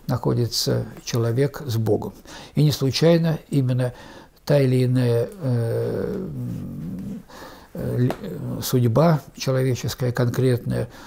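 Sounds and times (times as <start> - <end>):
man speaking: 0.0 - 11.0
man's drawn-out uh: 5.2 - 8.6.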